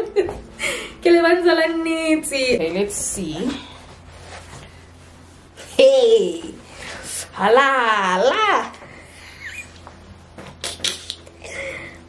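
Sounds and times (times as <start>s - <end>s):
fabric apron rustling: 2.4s - 7.1s.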